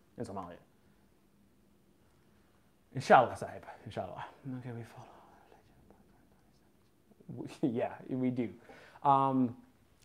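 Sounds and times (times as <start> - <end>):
man speaking: 0.2 - 0.7, 2.9 - 5.8, 7.2 - 9.6.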